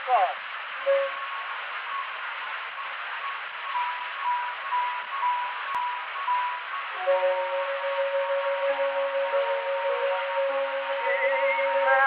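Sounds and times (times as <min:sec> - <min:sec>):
record surface hiss: 0:00.0 - 0:12.0
faint instrumental music: 0:02.9 - 0:12.0.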